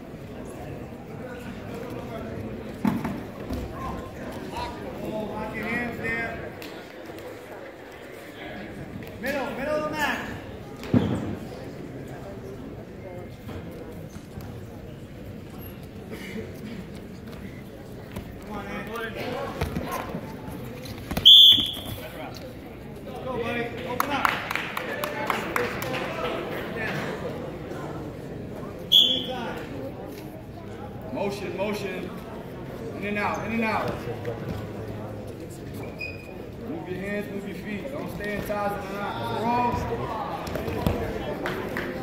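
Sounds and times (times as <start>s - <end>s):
spectators chattering: 0.0s - 42.0s
voices in a gym: 0.0s - 42.0s
referee's whistle: 21.2s - 22.0s, 28.9s - 29.4s.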